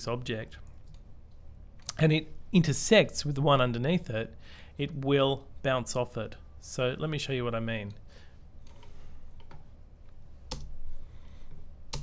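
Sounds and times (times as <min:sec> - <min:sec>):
low steady hum: 0:00.0 - 0:12.0
computer keyboard and mouse clicks: 0:10.5 - 0:10.8.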